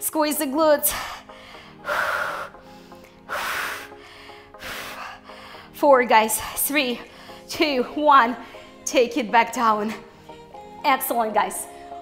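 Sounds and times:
quiet background music: 0.0s - 12.0s
woman breathing hard: 0.9s - 5.8s.

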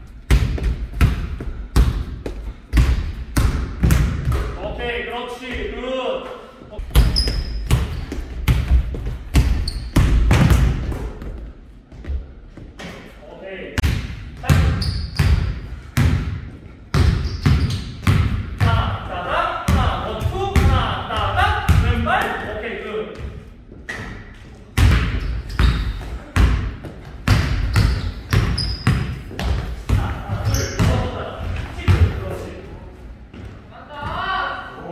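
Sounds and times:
sneaker squeaks: 6.8s - 8.5s, 9.4s - 10.2s, 14.6s - 15.6s, 17.0s - 18.1s, 25.0s - 26.3s, 27.6s - 29.5s, 30.3s - 31.2s.

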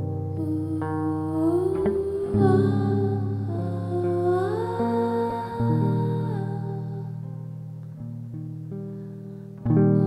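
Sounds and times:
hollow-body electric guitar notes: 0.0s - 10.0s
woman humming wordlessly: 0.4s - 7.2s.

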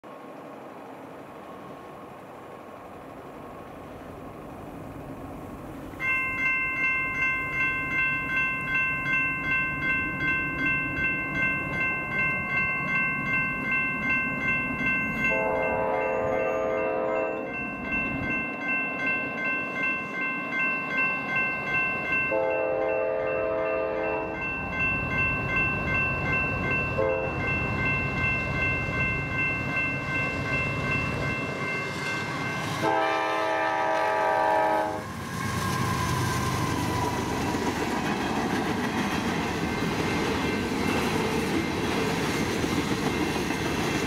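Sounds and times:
electronic crossing bells ringing: 6.0s - 34.7s
train horn: 15.2s - 17.5s, 22.3s - 24.4s, 27.0s - 27.5s, 32.7s - 35.1s.

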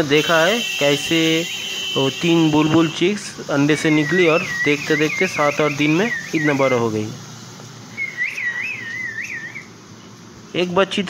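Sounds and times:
warbling whistle: 3.7s - 6.9s, 7.9s - 9.8s.

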